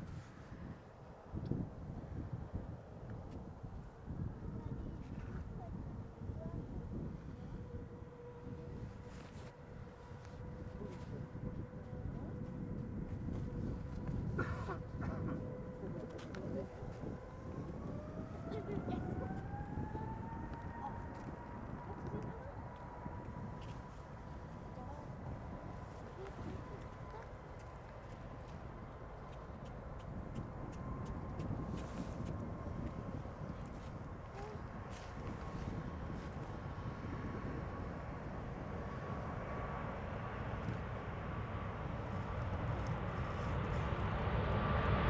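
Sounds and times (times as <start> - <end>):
jet engine whine: 0.0 - 45.0
jet engines deep rumble: 0.0 - 45.0.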